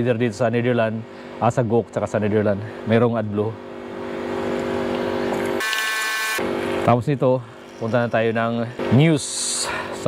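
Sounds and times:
electric pump humming: 0:02.7 - 0:10.0.

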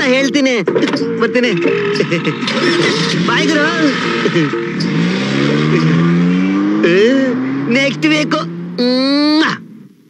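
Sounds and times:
car engine revving: 0:01.0 - 0:10.0.

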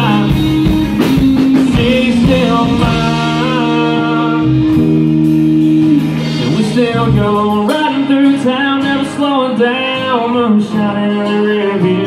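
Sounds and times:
country-rock band playing: 0:00.0 - 0:12.0.

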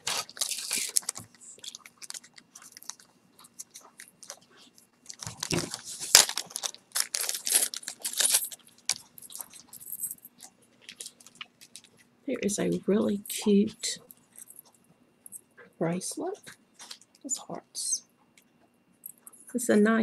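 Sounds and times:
plastic bag crinkling: 0:00.0 - 0:04.4, 0:05.0 - 0:12.0.

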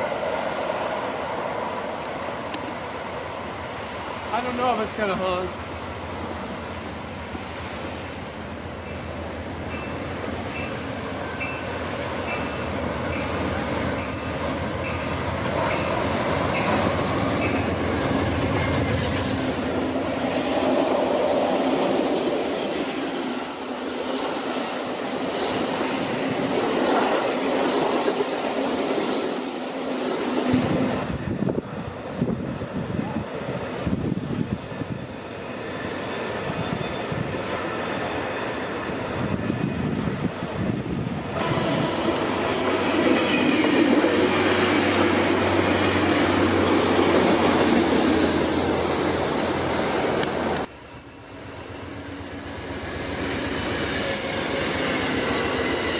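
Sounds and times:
diesel locomotive: 0:00.0 - 0:55.9
passenger train rolling past: 0:00.0 - 0:55.9
train wheel squeal: 0:07.7 - 0:26.4, 0:34.5 - 0:40.0, 0:49.4 - 0:55.9
clickety-clack of train cars: 0:08.7 - 0:23.5, 0:41.4 - 0:55.9.

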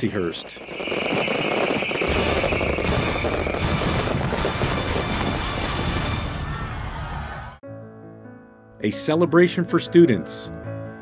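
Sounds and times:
fireworks bangs and crackles: 0:00.0 - 0:06.6
background music: 0:02.4 - 0:11.0.

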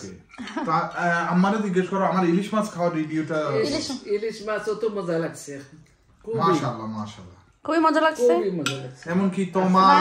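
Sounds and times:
cutlery clinking on china plates: 0:08.6 - 0:09.2.

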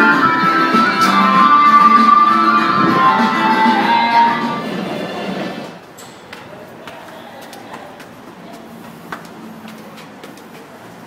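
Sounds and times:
guitar music: 0:00.0 - 0:05.6
murmur of indistinct voices: 0:00.0 - 0:11.0.

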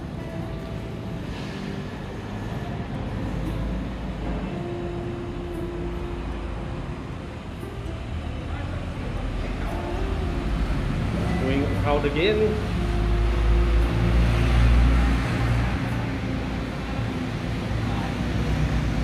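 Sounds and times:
background traffic rumble: 0:00.0 - 0:19.0
faint musical tones: 0:00.0 - 0:19.0.

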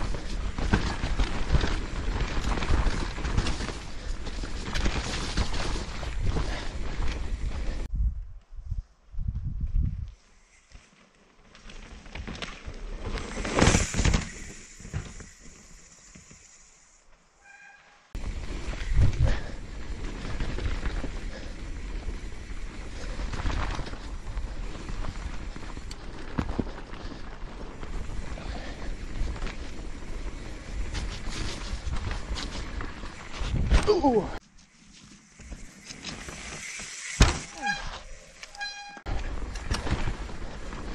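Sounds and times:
bike rattling and knocking: 0:00.0 - 0:07.7, 0:34.8 - 0:40.9
bike tyres rumbling on dirt: 0:00.0 - 0:07.9, 0:09.5 - 0:17.5, 0:18.2 - 0:40.9
wind on microphone: 0:07.4 - 0:10.2.

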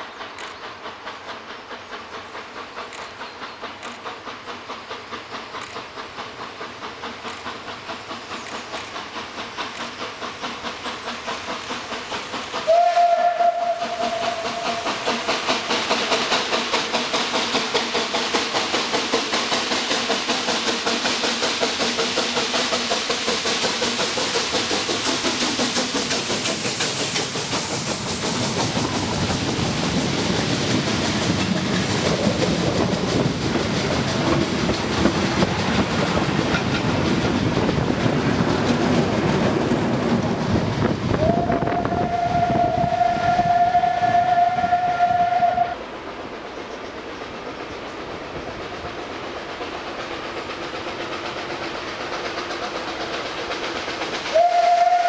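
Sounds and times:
coaches clacking over rail joints: 0:00.0 - 0:43.7, 0:45.6 - 0:55.0
hiss of steam: 0:00.0 - 0:55.0
steam locomotive chuffing: 0:00.0 - 0:55.0
steam whistle blast: 0:12.6 - 0:15.0, 0:41.2 - 0:45.8, 0:54.3 - 0:55.0.

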